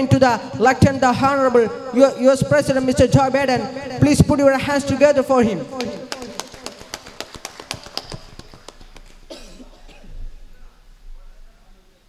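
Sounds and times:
people clapping: 0:05.7 - 0:09.5.

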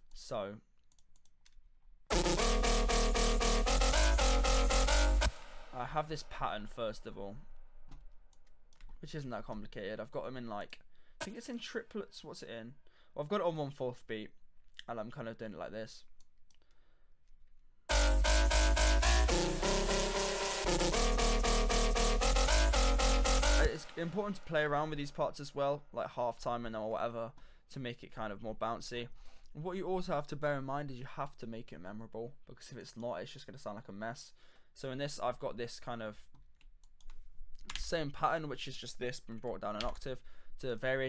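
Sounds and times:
computer mouse clicks: 0:00.8 - 0:01.6
drum and bass track: 0:02.1 - 0:06.2, 0:17.9 - 0:25.0.

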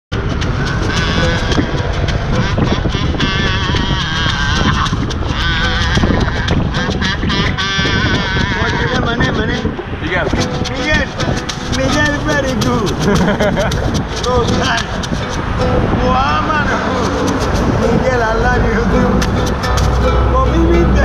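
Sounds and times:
acoustic guitar strummed: 0:00.1 - 0:21.0
kazoo buzzing a melody: 0:00.3 - 0:09.3
plastic bottle shakers: 0:10.4 - 0:15.4.

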